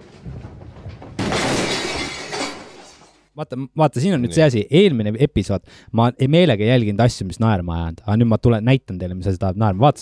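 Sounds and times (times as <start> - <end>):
crash of things breaking: 0.2 - 3.2
shattering: 1.2 - 3.2.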